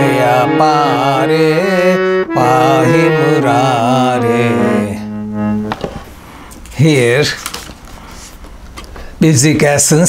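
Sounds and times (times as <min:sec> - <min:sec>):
man singing devotional song: 0:00.0 - 0:05.2
harmonium chord: 0:00.0 - 0:06.0.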